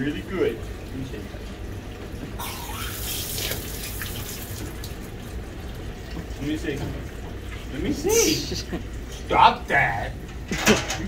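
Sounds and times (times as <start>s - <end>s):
hose sprayer spraying water: 2.4s - 4.6s.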